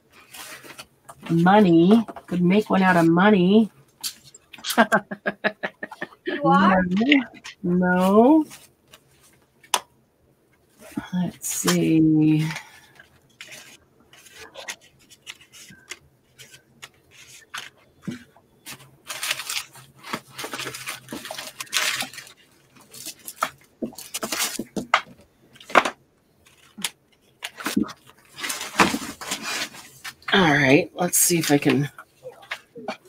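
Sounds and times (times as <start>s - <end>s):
paper rustling: 0.1s - 1.4s, 12.6s - 30.4s.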